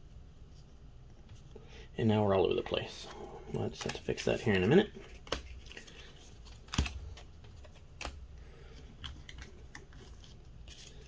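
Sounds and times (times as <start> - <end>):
cards clicking and tapping: 3.6 - 10.9.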